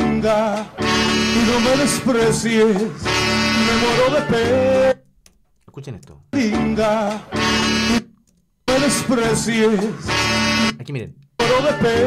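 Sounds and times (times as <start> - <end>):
man singing with band: 1.4 - 5.0, 11.4 - 12.0.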